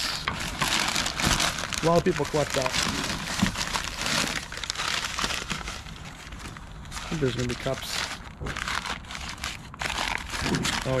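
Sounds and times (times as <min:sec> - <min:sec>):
newspaper crumpling and rustling: 0:00.3 - 0:11.0.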